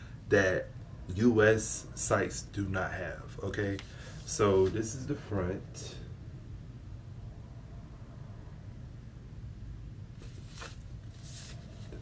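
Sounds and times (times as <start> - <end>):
low room hum: 0.0 - 12.0
cardboard record jacket rustling: 10.2 - 12.0.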